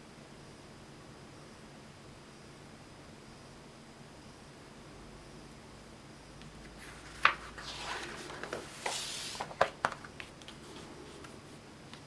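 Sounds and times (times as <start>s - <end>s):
paper page swishing: 6.8s - 9.8s.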